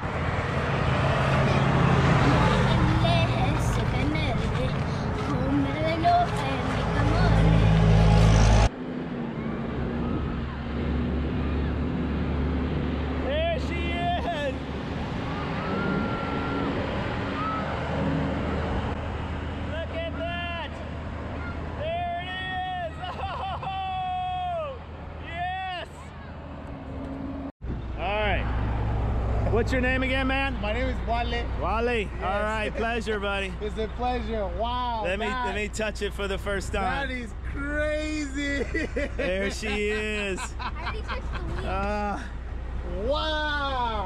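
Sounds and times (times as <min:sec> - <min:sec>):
voices calling out: 0:01.0 - 0:08.1, 0:29.4 - 0:44.0.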